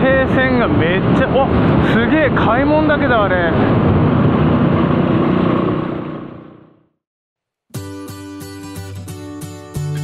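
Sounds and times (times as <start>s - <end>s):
wind noise: 0.0s - 6.5s
road noise: 0.0s - 7.0s.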